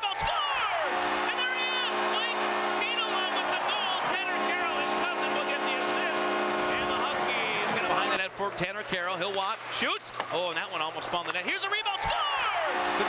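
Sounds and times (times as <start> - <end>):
arena goal horn: 0.0 - 8.2, 12.2 - 13.0.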